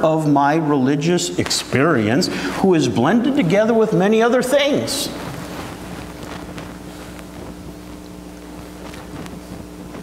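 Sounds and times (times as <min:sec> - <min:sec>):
low even hum with hiss: 0:00.0 - 0:10.0.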